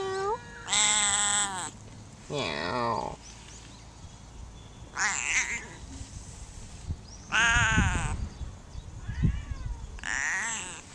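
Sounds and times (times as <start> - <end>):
cat meowing: 0.0 - 1.7, 5.0 - 5.8, 7.3 - 8.2, 9.0 - 10.8.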